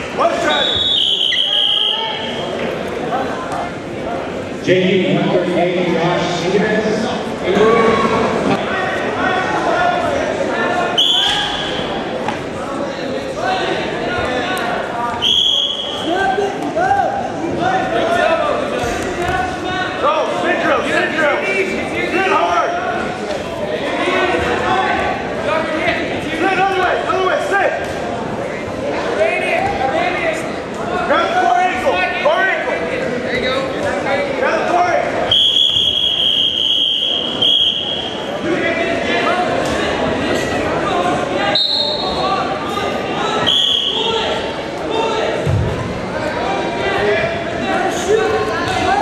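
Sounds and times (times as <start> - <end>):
spectators' voices and shouts: 0.0 - 49.0.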